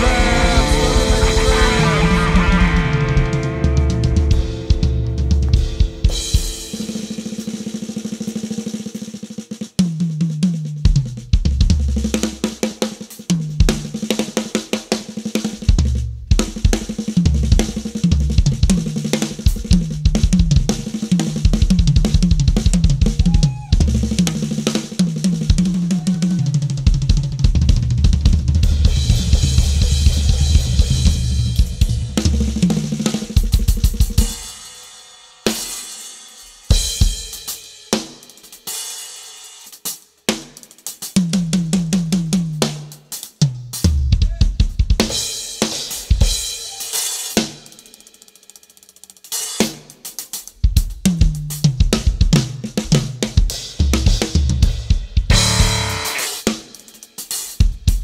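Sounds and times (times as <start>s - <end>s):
drum kit playing: 0.0s - 58.0s.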